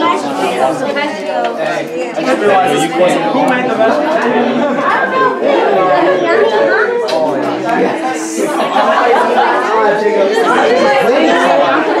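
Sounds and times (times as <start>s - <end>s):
overlapping conversation: 0.0s - 12.0s.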